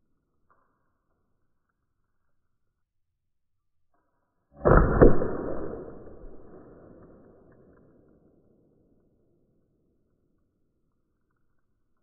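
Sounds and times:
projectile bursting crack: 4.6 - 8.3
launcher firing report: 4.6 - 9.0.

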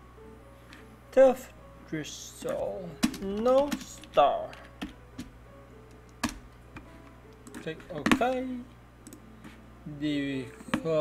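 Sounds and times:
faint jazz music: 0.0 - 11.0
keyboard and mouse clicks: 6.0 - 8.4, 9.0 - 9.2.

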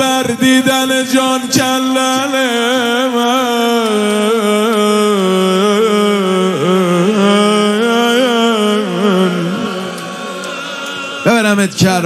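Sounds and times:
man chanting a lament: 0.0 - 10.1.

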